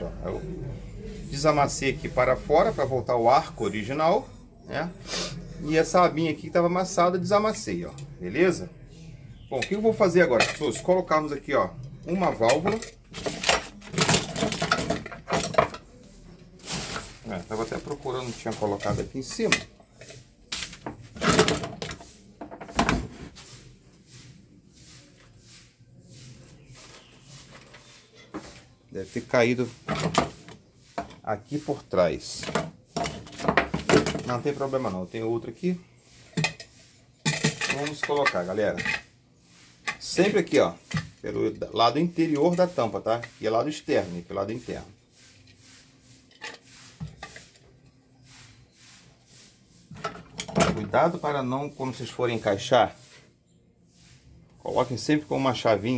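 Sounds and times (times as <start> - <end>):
shuffling and rustling: 9.6 - 36.4
small objects knocking and clattering: 12.5 - 15.9.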